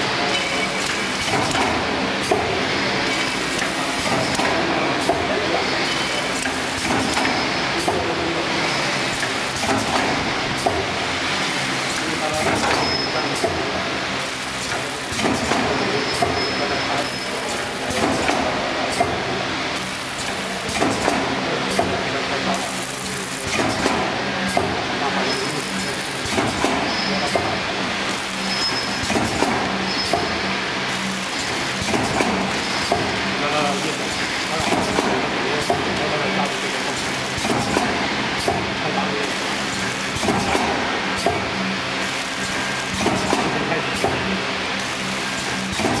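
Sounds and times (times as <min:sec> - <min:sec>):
packaging machine humming: 0:00.0 - 0:46.0
machine clicks and knocks: 0:00.2 - 0:05.4, 0:06.2 - 0:08.2, 0:09.1 - 0:11.0, 0:11.9 - 0:13.8, 0:14.6 - 0:16.4, 0:17.4 - 0:19.3, 0:20.0 - 0:24.9, 0:25.7 - 0:30.4, 0:31.0 - 0:41.6, 0:42.4 - 0:44.4, 0:45.0 - 0:46.0.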